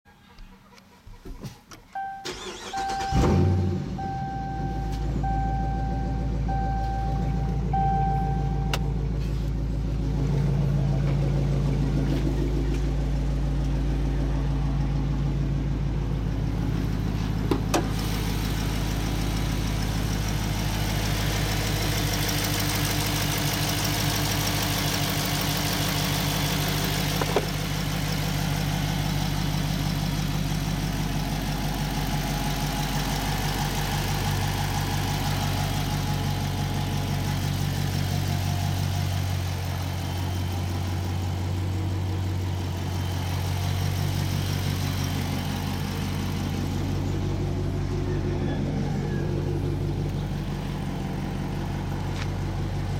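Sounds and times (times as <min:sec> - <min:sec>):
car engine idling: 0:00.1 - 0:52.9.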